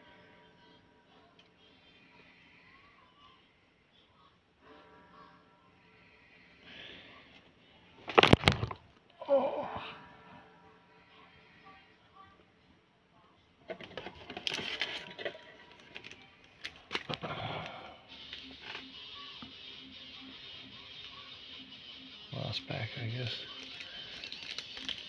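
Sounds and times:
faint background music: 0:00.0 - 0:25.0
foil pack rustling: 0:13.8 - 0:17.2, 0:23.5 - 0:25.0.

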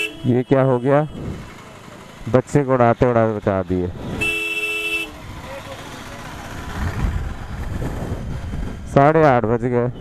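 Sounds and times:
vehicle horn: 0:00.0 - 0:01.3, 0:04.1 - 0:05.2
motorcycle running: 0:00.0 - 0:09.8.

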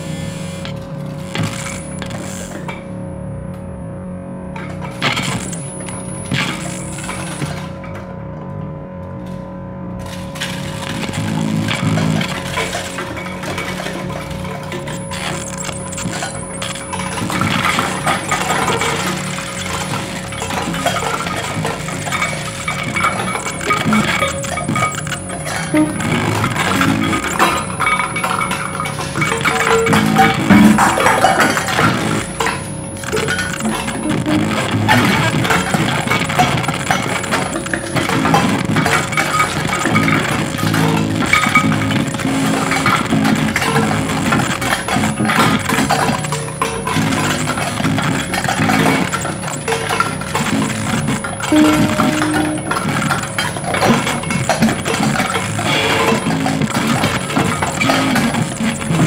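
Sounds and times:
steady held tone: 0:00.0 - 0:07.9, 0:10.8 - 0:59.0
experimental music: 0:04.4 - 0:59.0.

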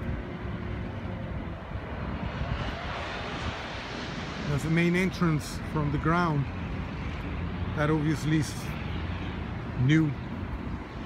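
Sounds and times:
distant engine drone: 0:00.0 - 0:11.0.

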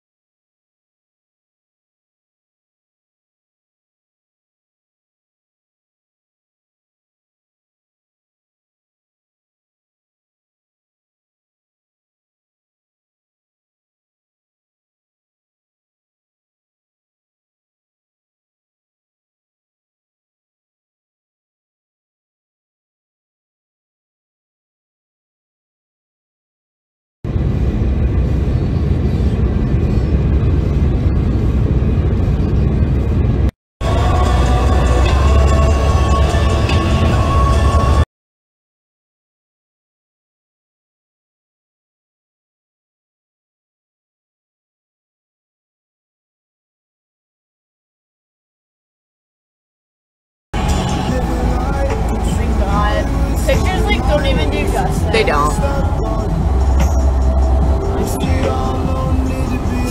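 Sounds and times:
road and wind noise inside car: 0:27.3 - 0:38.0, 0:50.6 - 0:59.9
person speaking: 0:51.2 - 0:56.3.

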